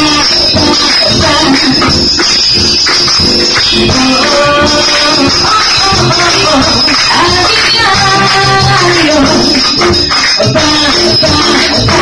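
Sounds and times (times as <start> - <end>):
woman singing into a microphone: 0.0 - 2.0, 3.7 - 12.0
audience clapping in time: 0.0 - 12.0
live jazz band playing: 0.0 - 12.0.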